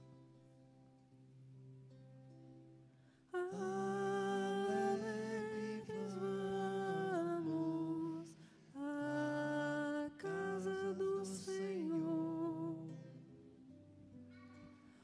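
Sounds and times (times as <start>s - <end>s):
person humming a slow melody: 3.4s - 13.3s.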